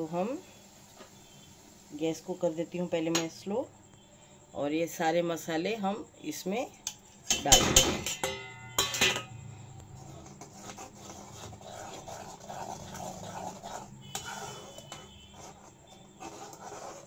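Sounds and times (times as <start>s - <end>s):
metal spoon scraping pan: 6.9s - 17.0s
metal clink on pan: 7.3s - 9.4s.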